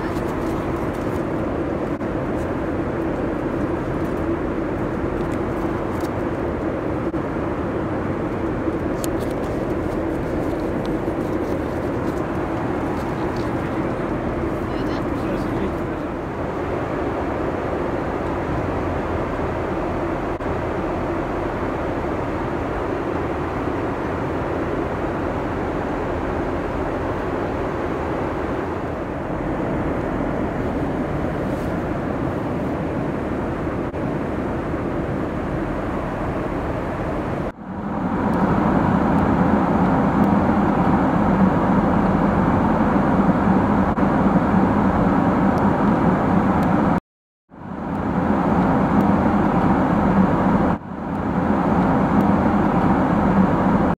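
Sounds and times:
airplane cabin noise: 0:00.0 - 0:53.9.

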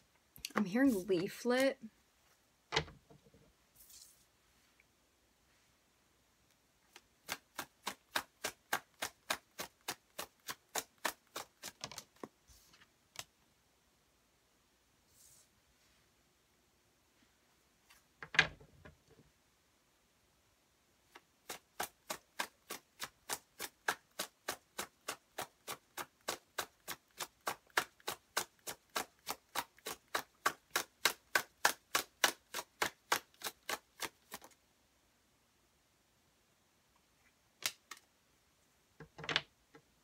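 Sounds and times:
cards being shuffled: 0:06.9 - 0:13.3, 0:28.9 - 0:34.6.

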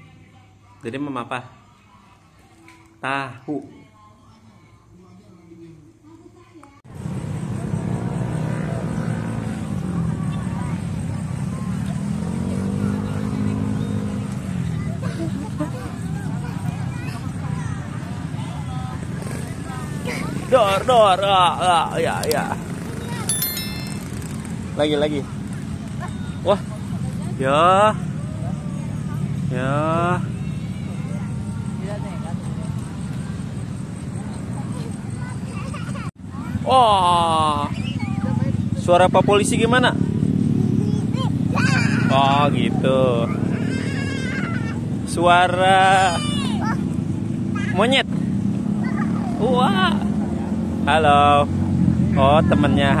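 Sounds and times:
faint voices of people: 0:00.0 - 0:39.3
motor vehicles passing: 0:06.9 - 0:53.0
road traffic engine hum: 0:06.9 - 0:53.0
babble of voices: 0:43.1 - 0:45.0.

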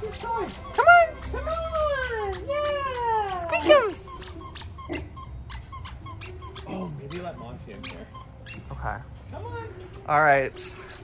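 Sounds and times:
dog whining: 0:00.0 - 0:11.0.

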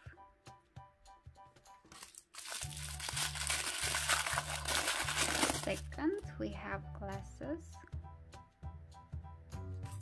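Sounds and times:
soft background music with bass beat: 0:00.0 - 0:10.0
wrapper crinkling: 0:01.9 - 0:05.8.

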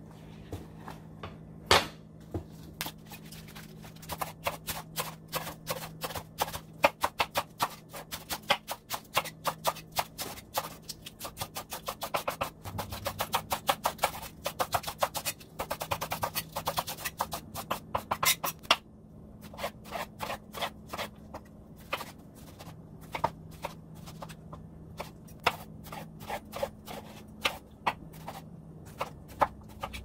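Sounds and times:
knife chopping lettuce on board: 0:03.5 - 0:18.6
faint low hum: 0:12.4 - 0:17.9.

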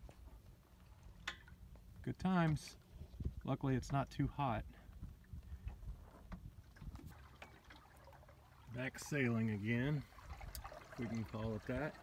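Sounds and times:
water lapping against hull: 0:04.6 - 0:12.0.

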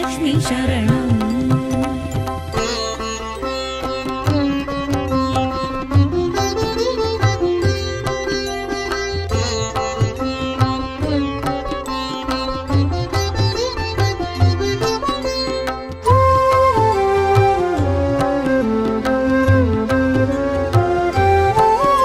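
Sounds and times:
plucked string melody: 0:00.0 - 0:22.0.

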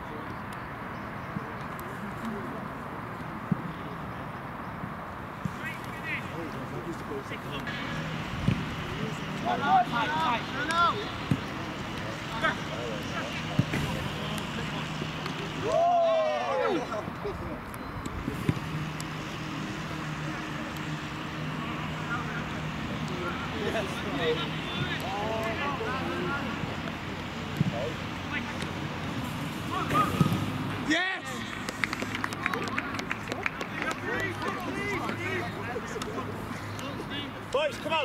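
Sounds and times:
faint shouts and voices: 0:08.2 - 0:17.6, 0:29.6 - 0:31.6
long drawn-out shout: 0:15.6 - 0:16.9.

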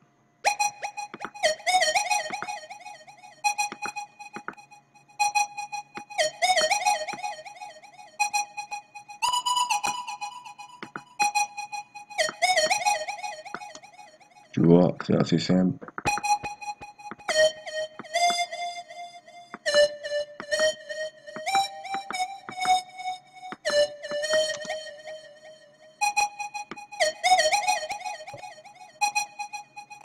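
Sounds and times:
flute-like synth lead melody: 0:00.5 - 0:14.1, 0:16.0 - 0:30.0.

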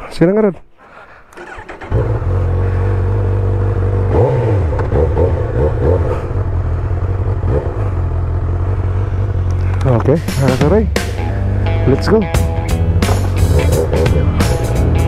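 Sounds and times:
motorcycle throttle blips: 0:01.4 - 0:12.1
motorcycle engine idling: 0:01.4 - 0:15.0.

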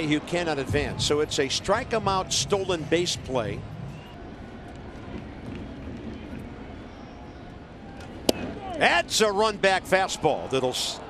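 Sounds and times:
murmur of crowd: 0:00.0 - 0:11.0.

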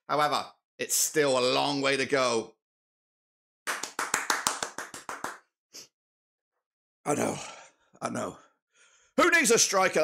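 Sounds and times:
hand clapping: 0:03.6 - 0:05.5.

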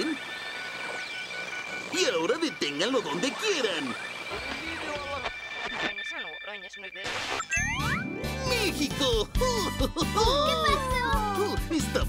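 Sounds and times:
warbling electronic tuning sound: 0:00.0 - 0:08.6.

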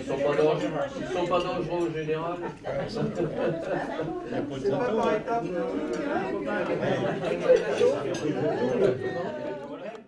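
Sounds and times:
chatter of diners: 0:00.0 - 0:10.0.

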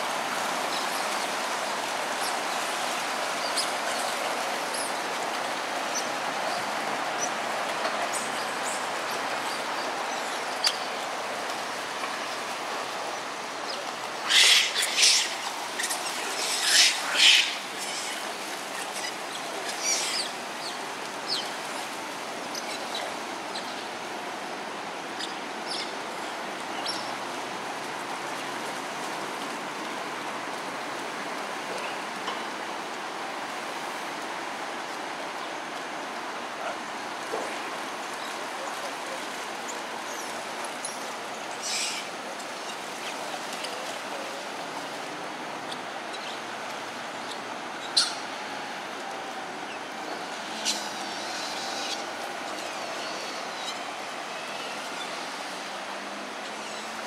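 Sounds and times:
flowing water: 0:00.0 - 0:57.0.

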